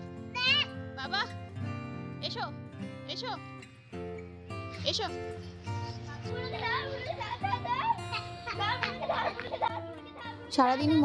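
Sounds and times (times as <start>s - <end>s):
background music with held notes: 0.0s - 11.0s
children calling and squealing: 0.3s - 1.4s, 4.6s - 11.0s.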